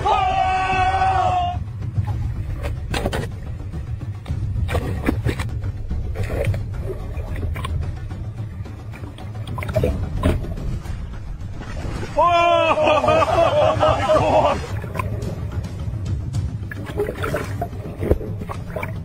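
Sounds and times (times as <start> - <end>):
low rumble: 0.0 - 19.0
fish thrashing and splashing: 4.3 - 10.7, 14.1 - 15.6, 16.6 - 19.0.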